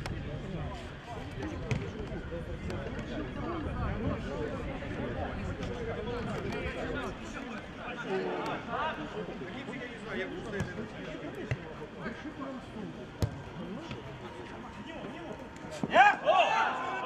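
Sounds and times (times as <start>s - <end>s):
ball being kicked: 1.7s - 2.0s, 13.2s - 14.0s
players shouting: 13.2s - 17.0s.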